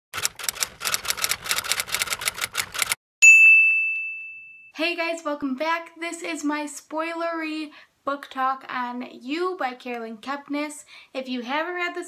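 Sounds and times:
typewriter keystrokes: 0.2 - 3.0
carriage-return bell ding: 3.2 - 4.8.

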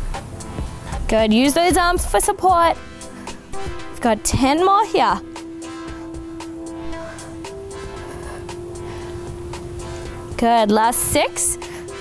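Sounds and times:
workout music with steady beat: 0.0 - 12.0
long held note: 2.7 - 10.4.

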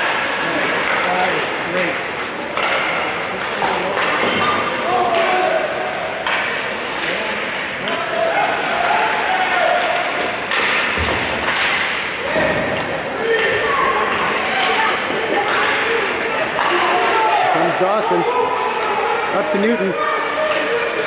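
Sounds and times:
puck and sticks knocking on boards: 0.0 - 5.6, 6.2 - 7.2, 9.7 - 17.8.

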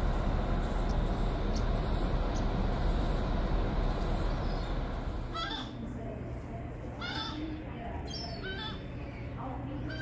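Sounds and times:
steady low rumble: 0.0 - 9.9
gull calling: 5.3 - 5.8, 7.0 - 8.9.

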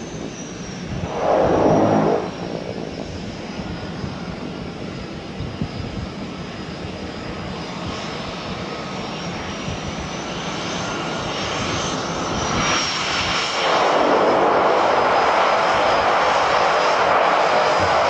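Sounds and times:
high turbine whine: 0.0 - 4.9
turboprop engines running: 0.0 - 6.6.

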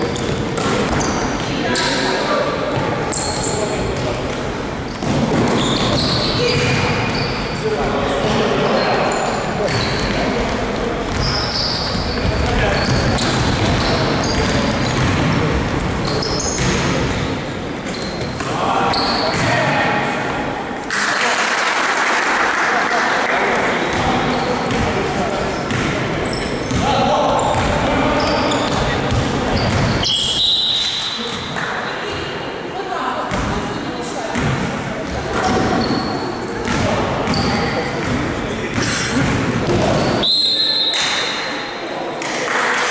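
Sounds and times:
basketball bouncing on gym court: 9.6 - 17.2, 24.7 - 24.9, 25.7 - 30.1, 34.3 - 36.0, 36.6 - 40.1.

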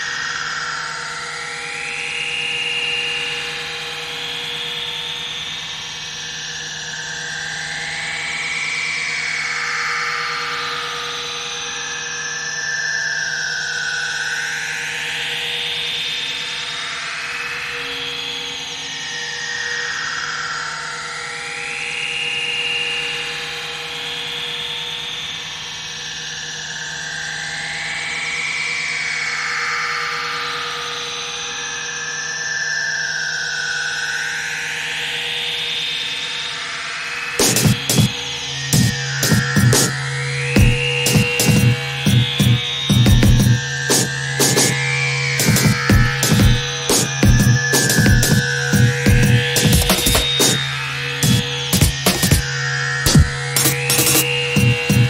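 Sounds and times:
gliding electronic drone: 37.4 - 55.0.

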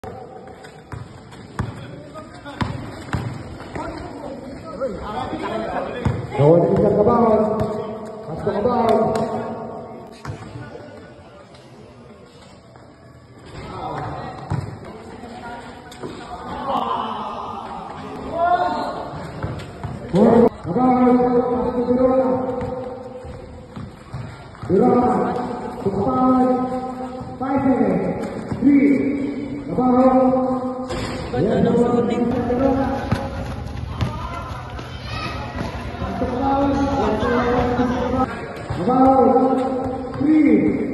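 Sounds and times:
basketball bouncing on concrete: 0.9 - 1.8, 2.5 - 4.0, 6.0 - 7.8, 22.4 - 25.2, 32.2 - 36.9.

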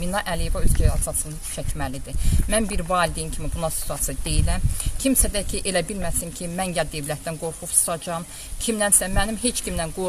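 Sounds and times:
woman speaking: 0.0 - 10.0.

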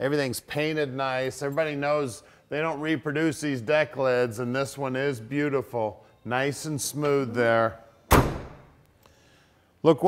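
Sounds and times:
car trunk lid thunk: 8.1 - 8.7.

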